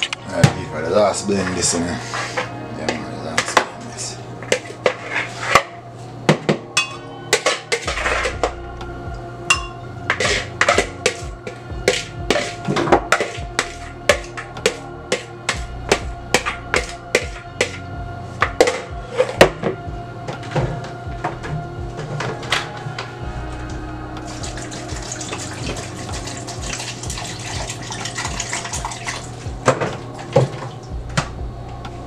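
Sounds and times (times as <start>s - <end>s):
background music: 0.0s - 32.0s.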